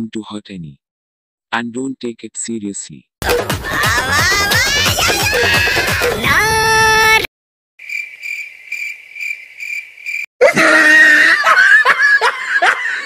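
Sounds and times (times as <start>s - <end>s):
electronic music: 3.2s - 7.3s
crickets chirping: 7.8s - 10.3s
loud laughter: 10.4s - 13.0s.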